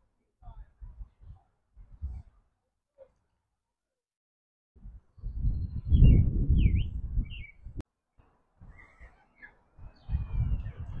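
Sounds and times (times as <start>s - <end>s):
low rumble on microphone: 4.8s - 7.8s, 9.8s - 11.0s
birds chirping: 5.2s - 7.8s, 8.6s - 11.0s.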